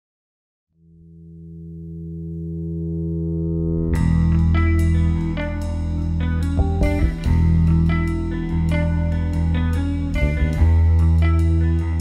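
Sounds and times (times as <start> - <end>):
held low rock chord: 2.2 - 12.0.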